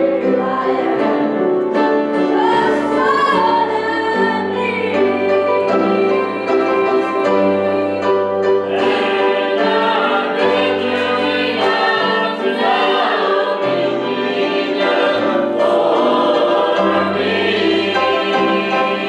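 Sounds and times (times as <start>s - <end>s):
group singing a hymn: 0.0s - 1.5s, 2.2s - 19.0s
piano: 0.0s - 19.0s.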